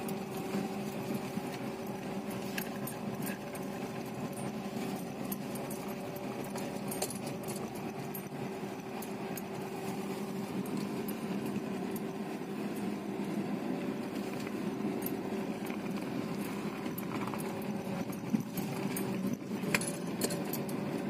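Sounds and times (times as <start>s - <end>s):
car engine humming: 0.0s - 21.0s.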